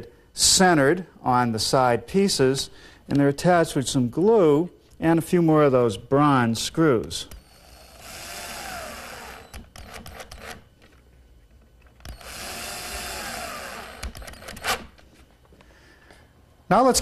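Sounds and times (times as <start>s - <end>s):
drill-driver driving screws into wood: 7.3s - 10.7s, 12.0s - 15.0s.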